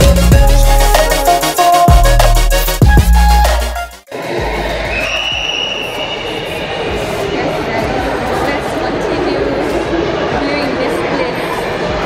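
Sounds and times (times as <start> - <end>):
echoing murmur of indoor hall: 4.1 - 12.0.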